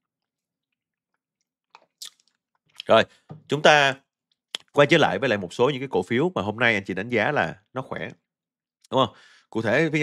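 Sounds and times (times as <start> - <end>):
man speaking: 2.8 - 4.0, 4.6 - 8.2, 8.9 - 10.0.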